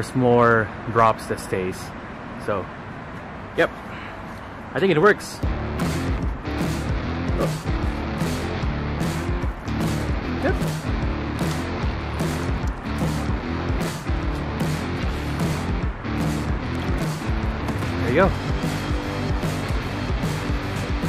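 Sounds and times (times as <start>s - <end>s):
background music with steady beat: 5.4s - 21.0s
sustained bass line: 5.4s - 21.0s.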